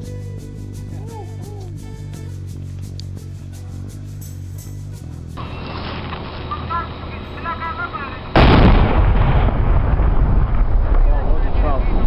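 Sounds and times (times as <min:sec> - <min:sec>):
explosion boom and rumble: 0:08.3 - 0:12.0.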